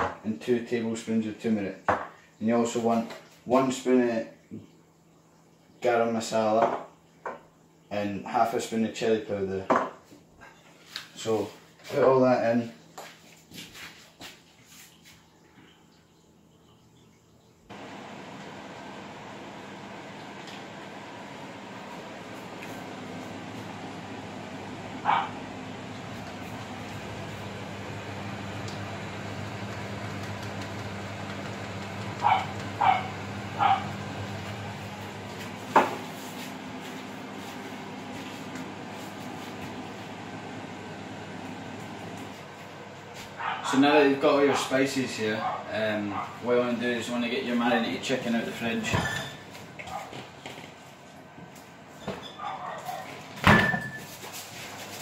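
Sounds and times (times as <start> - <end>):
small dog yipping: 52.3 - 53.2.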